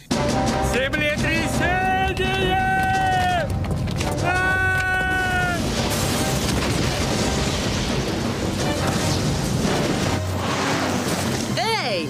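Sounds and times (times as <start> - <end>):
music: 0.0 - 12.0
earthquake rumble: 0.7 - 11.6
falling rock: 1.5 - 11.3.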